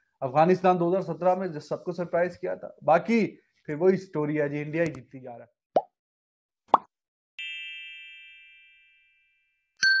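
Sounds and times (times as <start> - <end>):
bright bell chime: 7.4 - 10.0.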